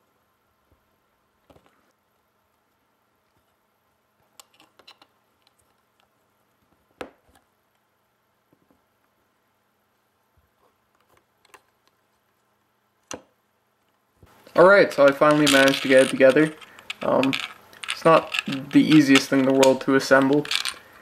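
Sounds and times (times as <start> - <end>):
plastic parts clicking: 14.9 - 20.9.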